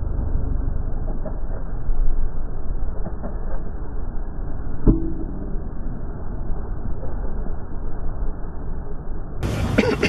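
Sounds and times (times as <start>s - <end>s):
muffled outdoor rumble: 0.0s - 10.0s
person coughing: 9.8s - 10.0s.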